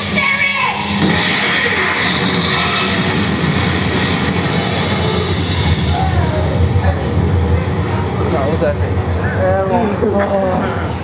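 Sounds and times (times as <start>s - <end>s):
cartoon explosion rumble: 0.8s - 7.8s.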